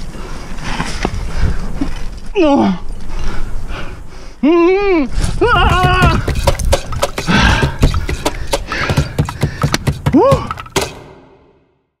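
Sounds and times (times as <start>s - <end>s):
sharp thud: 5.8s - 11.7s
hard hit: 5.8s - 11.8s.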